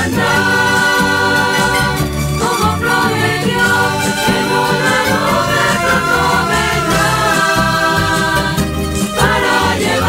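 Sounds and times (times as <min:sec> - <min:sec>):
choir singing with instruments: 0:00.0 - 0:10.0.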